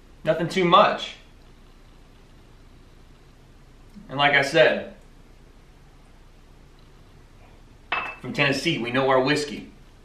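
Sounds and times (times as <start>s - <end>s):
glass clinking on stone countertop: 7.9s - 8.2s.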